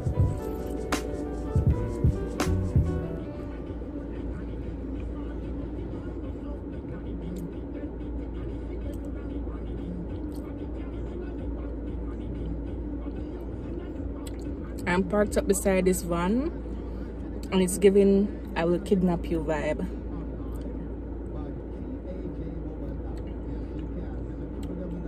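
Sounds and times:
low rumble in car cabin: 0:00.0 - 0:25.0.

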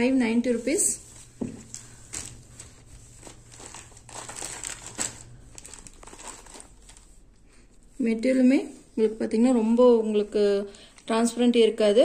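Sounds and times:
cloth rustling: 0:00.3 - 0:09.2.

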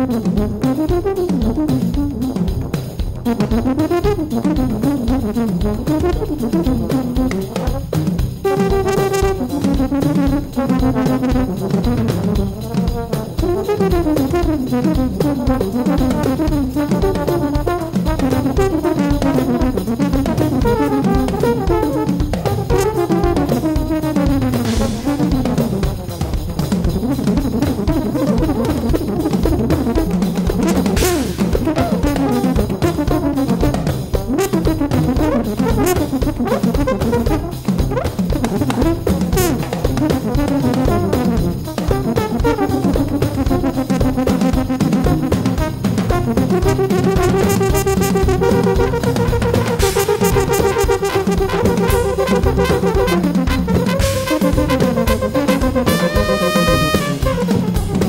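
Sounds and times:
brass section playing melody: 0:00.0 - 0:58.0
busy drum kit: 0:00.0 - 0:58.0.

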